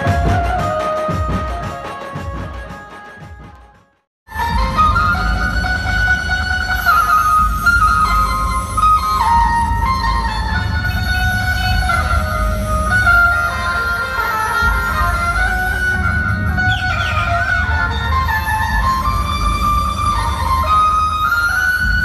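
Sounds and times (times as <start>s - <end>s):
amplified electric banjo melody: 4.3s - 21.4s.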